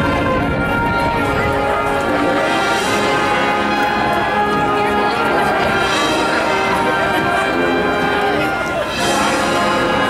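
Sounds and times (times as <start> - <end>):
marching band playing: 0.0 - 10.0.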